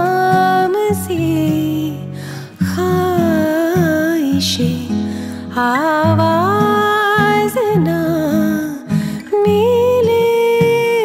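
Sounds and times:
guitar accompaniment: 0.0 - 11.0.

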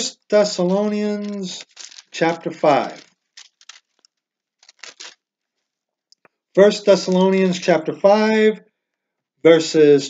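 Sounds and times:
pages turning: 0.0 - 5.8.

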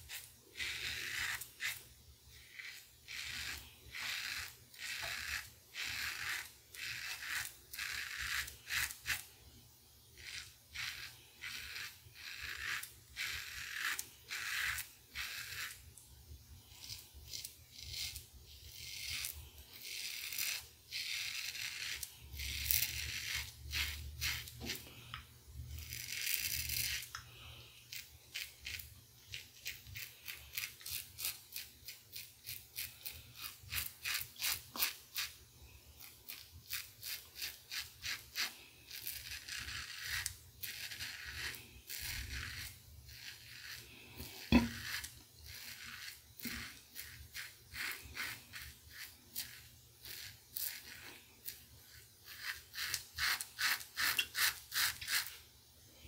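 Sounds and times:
razor scraping stubble: 0.0 - 9.3, 10.1 - 16.0, 16.6 - 55.4.

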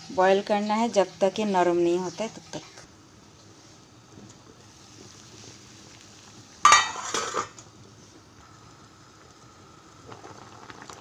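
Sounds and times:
gas burner hiss: 0.0 - 11.0
pot lid clattering on pot: 6.7 - 7.6.

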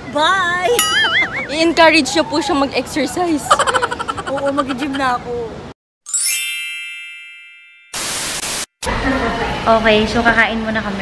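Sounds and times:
bright bell-like chime: 6.1 - 8.2.

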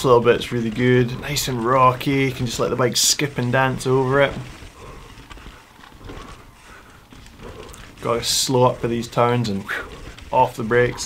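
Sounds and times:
mountain bike clattering over rocks: 0.0 - 11.0.

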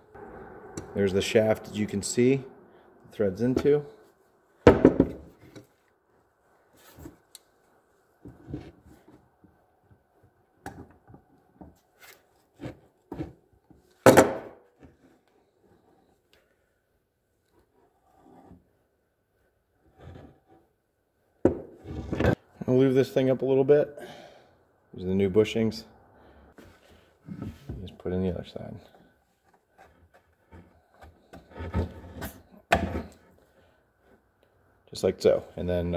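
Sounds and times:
loud knocks: 4.7 - 5.3.

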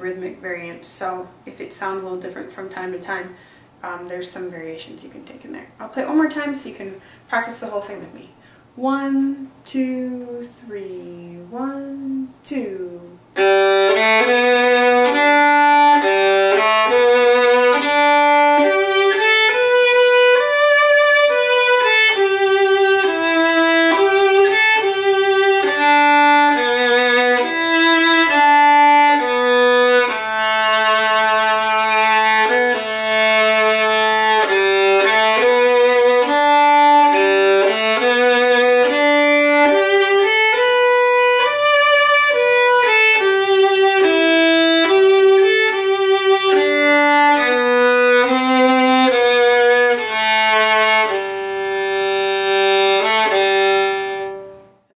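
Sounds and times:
solo fiddle playing: 13.3 - 54.9.

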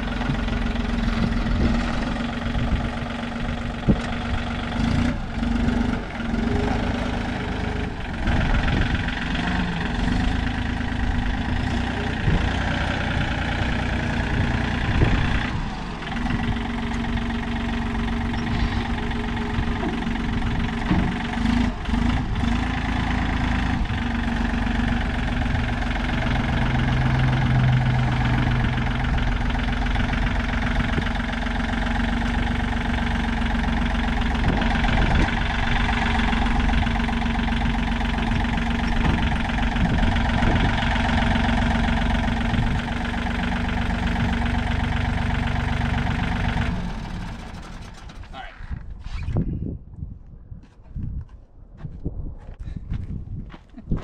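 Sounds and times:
tractor diesel engine running: 0.0 - 49.0.

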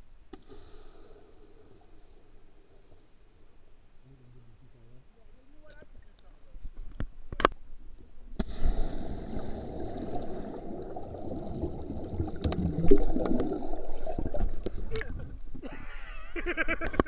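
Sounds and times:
muffled underwater rushing and bubbling: 8.4 - 15.6.

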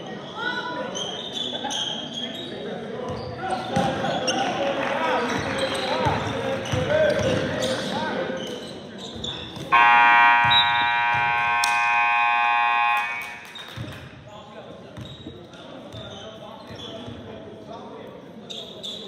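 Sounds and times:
sneakers squeaking: 0.2 - 4.6, 5.3 - 14.2, 15.0 - 17.2
scoreboard buzzer blast: 9.7 - 13.6
players calling out: 9.7 - 13.7.

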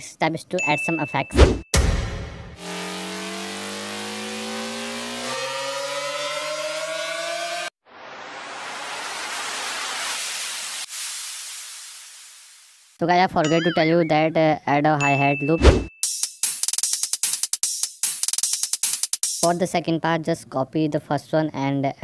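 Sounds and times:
impact hit: 1.4 - 3.1
synth riser: 1.4 - 11.3
white-noise riser: 1.8 - 13.0
white-noise downlifter: 2.6 - 6.8, 7.9 - 11.1.

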